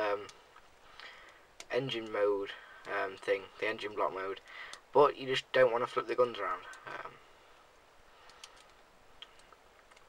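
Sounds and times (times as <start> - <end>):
faint plastic toy parts clicking: 8.2 - 10.0.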